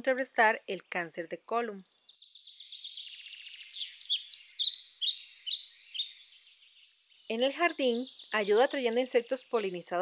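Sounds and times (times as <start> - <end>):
bird chirping high notes: 1.9 - 9.6.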